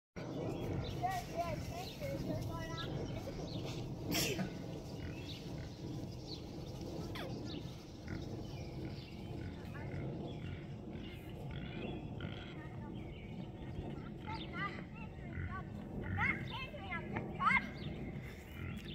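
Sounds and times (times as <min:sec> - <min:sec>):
animal sounds: 0:00.2 - 0:18.9
horses in sand arena: 0:00.2 - 0:18.9
indistinct voices: 0:00.4 - 0:18.9.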